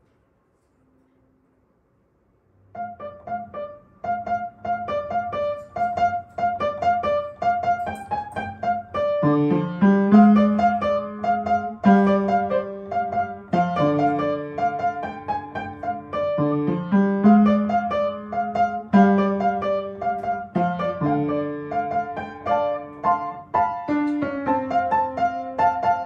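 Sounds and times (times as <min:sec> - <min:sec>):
solo upright piano: 0:02.7 - 0:26.0.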